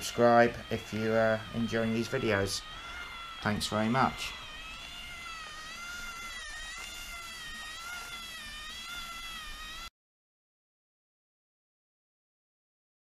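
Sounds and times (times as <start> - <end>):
motor whine: 0.0 - 9.9.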